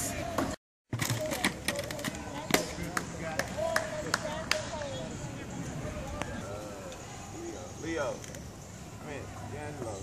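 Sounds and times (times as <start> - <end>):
distant voices: 0.0 - 10.0.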